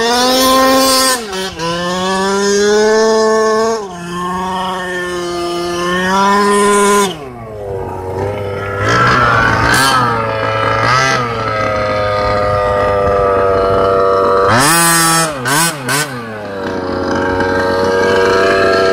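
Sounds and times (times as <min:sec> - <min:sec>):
engine throttle blips: 0:00.0 - 0:18.9
model truck engine idling: 0:00.6 - 0:18.9.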